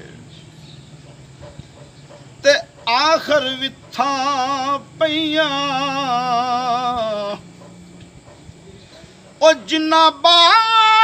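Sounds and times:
faint low hum: 0.0s - 11.0s
man singing unaccompanied: 2.4s - 7.7s, 9.3s - 11.0s.

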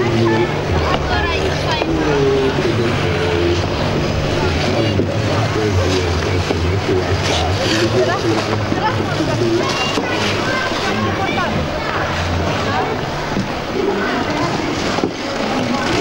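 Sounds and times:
children chattering and calling out: 0.0s - 16.0s
low machine drone: 0.0s - 16.0s.

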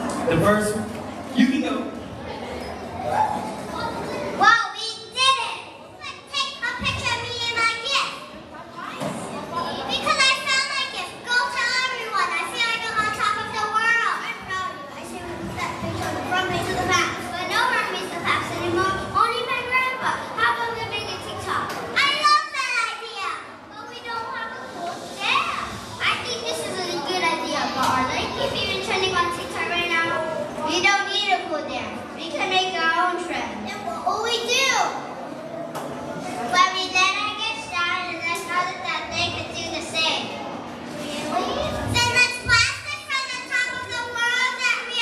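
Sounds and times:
children calling out: 2.2s - 8.4s, 9.0s - 40.1s
children shouting: 2.3s - 8.2s.

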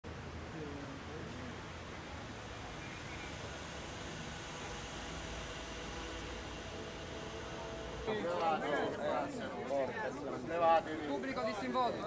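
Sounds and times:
faint steady hums: 0.1s - 12.0s
hiss: 2.1s - 8.1s.

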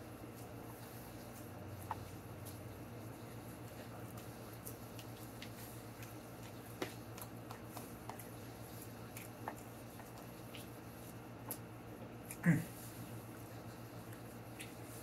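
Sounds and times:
chewing: 1.1s - 12.4s, 13.4s - 15.0s
short falling vocal sound: 12.4s - 12.7s.

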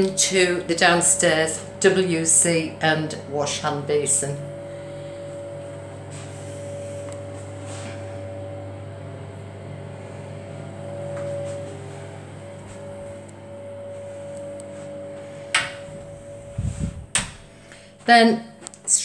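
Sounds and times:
faint high whine: 0.0s - 19.0s
low mechanical hum: 0.0s - 19.0s.

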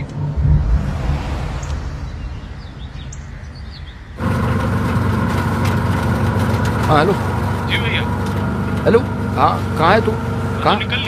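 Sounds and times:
low street rumble: 0.0s - 11.0s
vehicle engine running: 4.2s - 11.0s.

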